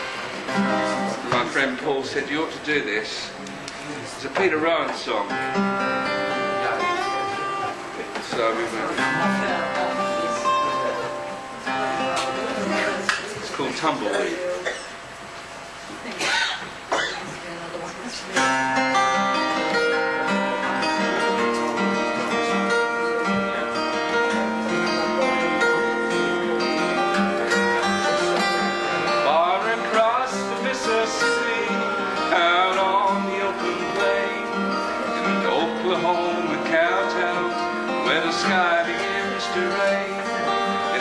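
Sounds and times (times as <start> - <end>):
acoustic guitar playing: 0.0 - 41.0.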